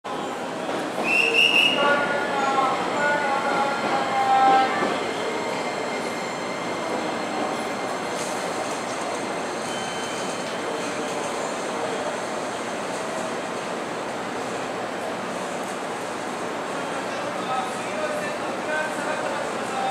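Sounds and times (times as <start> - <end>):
voices: 0.3 - 8.0.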